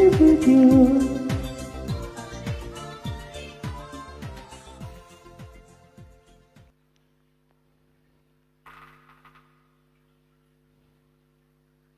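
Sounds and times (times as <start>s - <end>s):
faint electrical hum: 6.6s - 11.9s.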